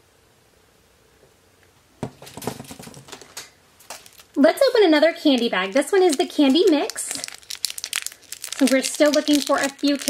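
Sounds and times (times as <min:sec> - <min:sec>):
plastic toy packages clicking: 0:02.6 - 0:04.4, 0:05.2 - 0:10.0.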